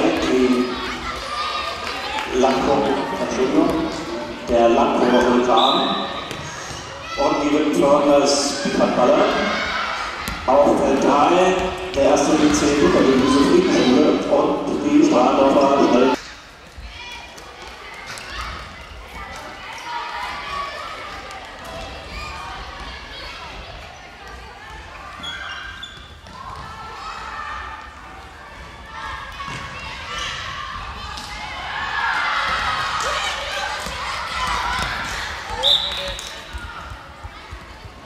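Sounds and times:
shrill whistle-like tone: 0:35.6 - 0:36.0.

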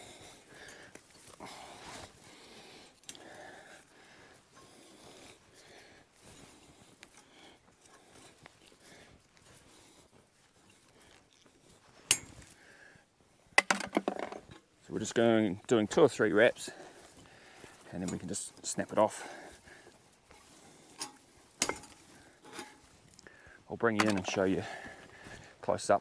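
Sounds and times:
wire scraping and rustling: 0:20.1 - 0:23.2.

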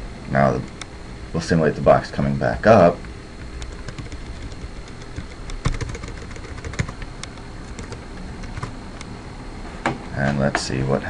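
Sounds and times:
background hum: 0:00.0 - 0:11.0
faint high whine: 0:00.0 - 0:11.0
keyboard and mouse clicks: 0:03.4 - 0:08.7.

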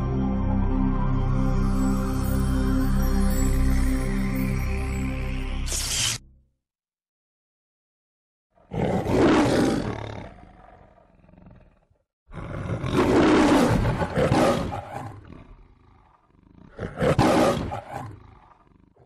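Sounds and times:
lion roaring: 0:08.6 - 0:19.0.

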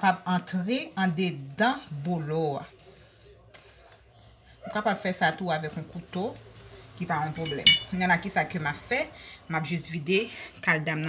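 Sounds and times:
woman speaking: 0:00.0 - 0:02.8, 0:04.6 - 0:06.4, 0:07.0 - 0:11.0.

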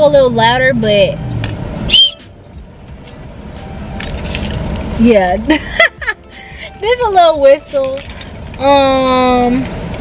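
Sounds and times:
high keychain whistle toot: 0:01.8 - 0:02.4.

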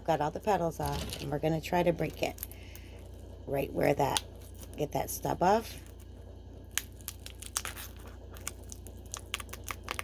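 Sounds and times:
steady low hum: 0:00.0 - 0:10.0
pine cone crackling and snapping: 0:02.0 - 0:03.3, 0:04.1 - 0:04.8, 0:05.8 - 0:10.0.

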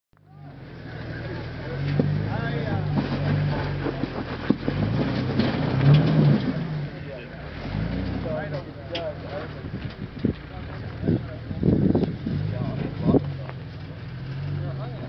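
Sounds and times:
off-road vehicle engine running: 0:00.2 - 0:15.0.

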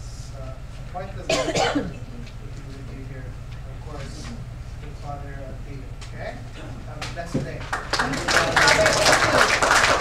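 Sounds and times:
loud cough: 0:01.3 - 0:02.0.

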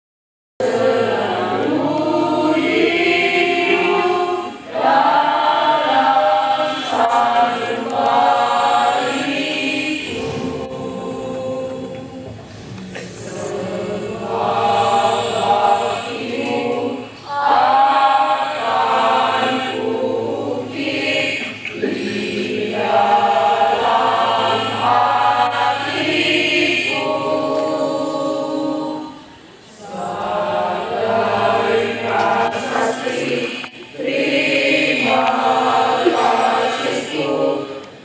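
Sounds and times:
choir singing: 0:00.6 - 0:38.0.

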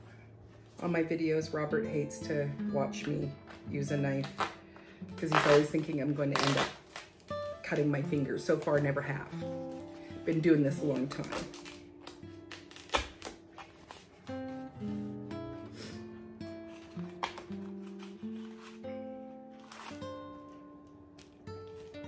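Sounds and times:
acoustic guitar music: 0:00.0 - 0:22.0
duct tape being pulled apart: 0:04.2 - 0:04.6, 0:05.2 - 0:07.6, 0:11.2 - 0:14.3, 0:16.5 - 0:20.6.

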